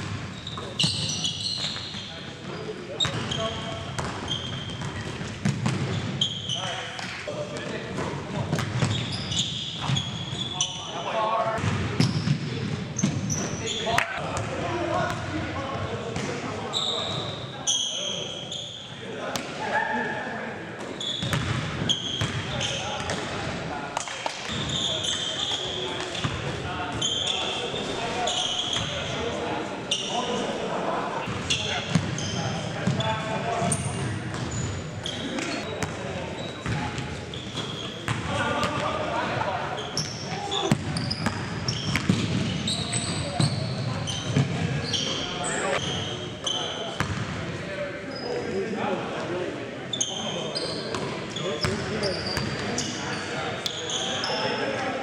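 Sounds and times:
players' voices echoing: 0:00.1 - 0:55.0
shoe squeaks: 0:00.3 - 0:05.3, 0:05.9 - 0:07.2, 0:08.8 - 0:11.2, 0:13.0 - 0:14.0, 0:16.7 - 0:19.0, 0:20.9 - 0:23.0, 0:24.5 - 0:29.2, 0:29.9 - 0:30.4, 0:31.2 - 0:38.2, 0:39.7 - 0:47.1, 0:48.1 - 0:48.6, 0:49.9 - 0:54.8
basketball bouncing on hardwood floor: 0:40.7 - 0:42.4.

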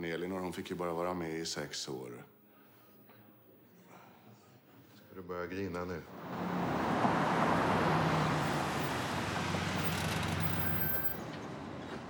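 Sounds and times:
vehicle engine and road noise: 0:06.1 - 0:12.0.

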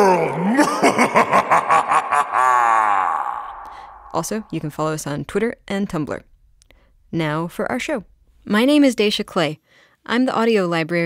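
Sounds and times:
person laughing: 0:00.0 - 0:04.1.

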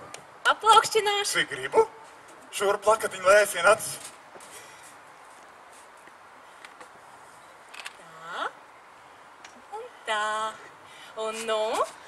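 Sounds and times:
open-air background hiss: 0:00.0 - 0:12.0.

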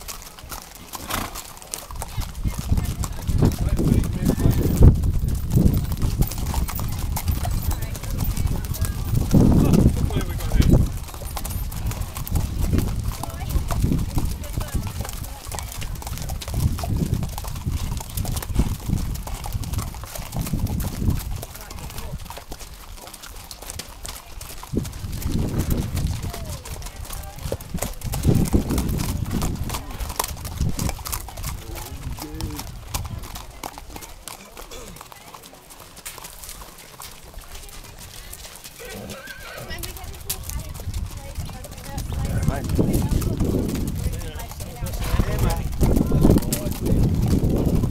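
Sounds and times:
hooves clip-clopping on dirt: 0:00.0 - 0:47.9
horse whinnying: 0:00.8 - 0:01.5, 0:38.7 - 0:40.0, 0:44.7 - 0:45.8
people's voices: 0:02.0 - 0:05.1, 0:05.9 - 0:12.4, 0:13.0 - 0:16.6, 0:25.9 - 0:36.2, 0:36.8 - 0:47.3.

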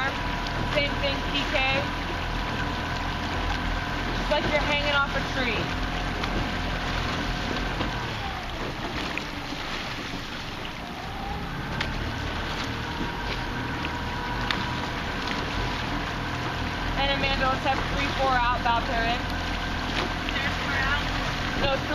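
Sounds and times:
outboard motor running: 0:00.0 - 0:21.9.

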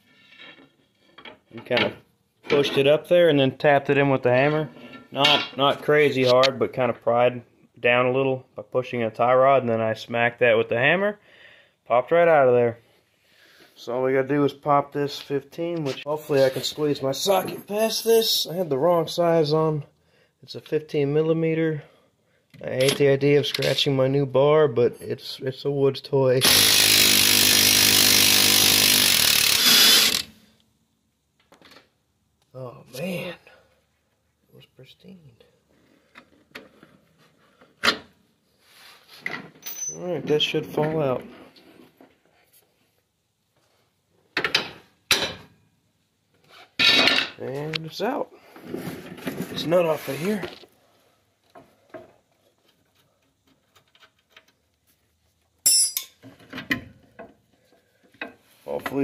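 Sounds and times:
impact wrench buzzing rattle: 0:26.4 - 0:30.4
metal tools clinking: 0:39.6 - 0:40.0, 0:55.6 - 0:56.2
sharp ringing metallic clank: 0:55.7 - 0:56.2.

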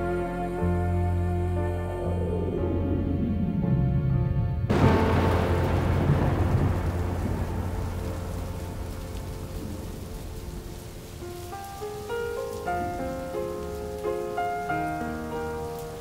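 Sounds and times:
gentle melody of single notes: 0:00.0 - 0:16.0
low thunder rumble: 0:01.8 - 0:16.0
steady rain: 0:04.7 - 0:16.0.

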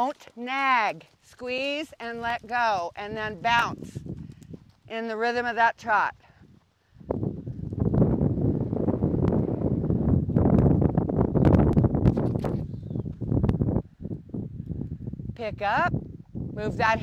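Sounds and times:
horse hoofbeats on dirt: 0:00.0 - 0:08.1
wind buffeting microphone: 0:02.0 - 0:17.0.

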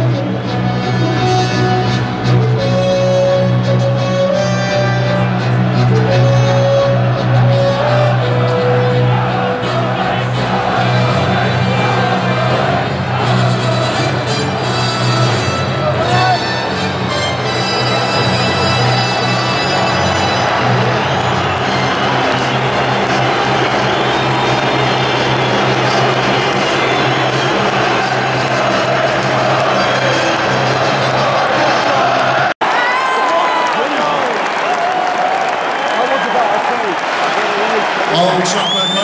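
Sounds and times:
music over public-address system: 0:00.0 - 0:32.3
large crowd noise: 0:00.0 - 0:39.0.

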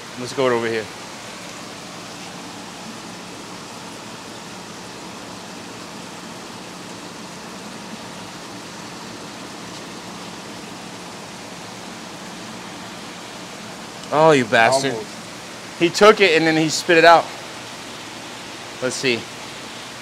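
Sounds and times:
low steady hum: 0:00.0 - 0:20.0
aquarium water bubbling: 0:00.9 - 0:20.0.

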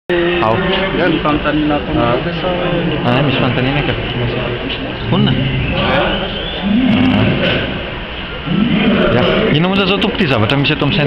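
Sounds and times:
man's drawn-out hesitation sound: 0:00.2 - 0:11.0.

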